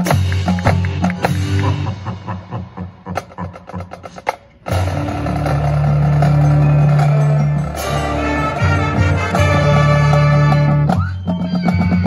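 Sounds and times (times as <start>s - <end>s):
marching band music: 0.0s - 2.2s, 3.2s - 12.0s
sharp percussion strikes: 0.0s - 2.4s, 4.0s - 12.0s.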